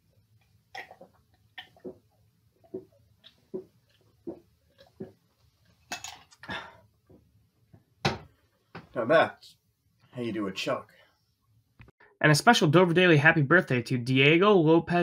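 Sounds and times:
person gulping a drink: 0.7 - 7.0.

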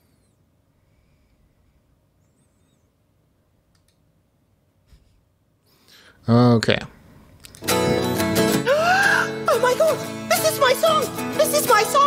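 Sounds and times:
faint computer mouse clicks: 3.7 - 4.0.

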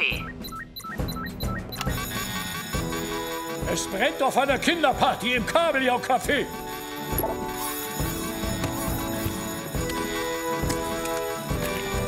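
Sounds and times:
quick repeated beeping: 0.0 - 2.6
cartoon background music: 0.0 - 12.0
alarm bell ringing: 0.8 - 5.1, 6.1 - 12.0.

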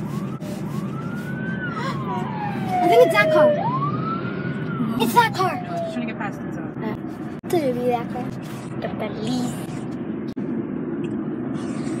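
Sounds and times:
siren-like wail: 0.0 - 6.4
car cabin road noise: 0.0 - 12.0.

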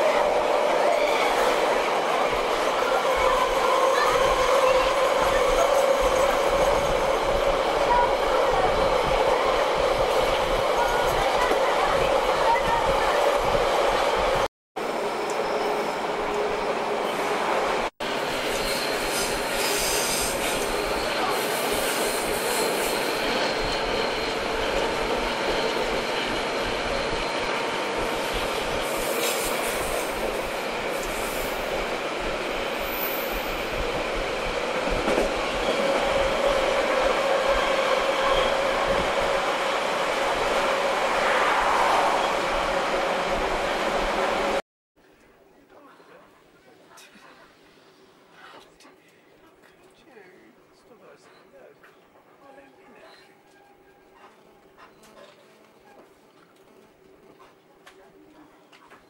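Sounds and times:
passenger train running on rails: 0.0 - 44.6.

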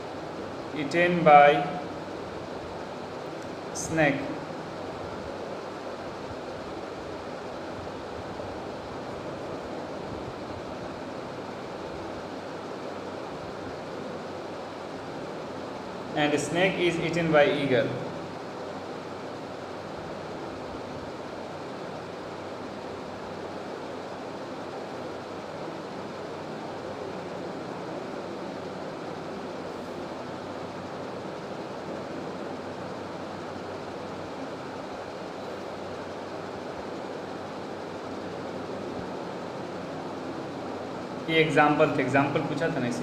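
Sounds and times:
room hiss: 0.0 - 43.0.

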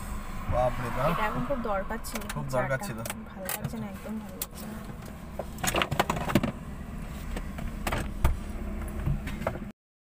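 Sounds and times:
car cabin rumble: 0.0 - 9.7.

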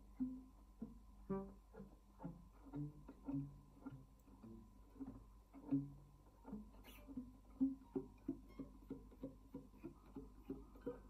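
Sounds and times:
classical guitar plucked notes: 0.0 - 11.0.

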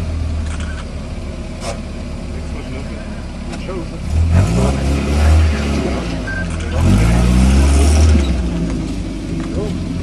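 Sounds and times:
off-road vehicle engine revving: 1.5 - 10.0.

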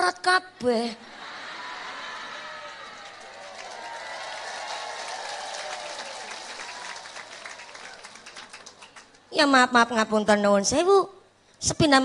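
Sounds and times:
audience applauding: 1.3 - 9.2.

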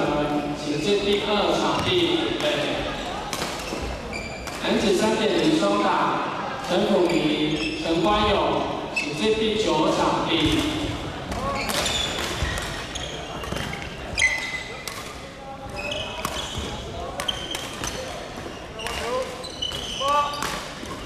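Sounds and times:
shoes squeaking on wooden floor: 2.9 - 4.7, 7.0 - 8.3, 11.4 - 14.8, 15.6 - 21.0
racket hitting shuttlecock: 14.8 - 15.2.

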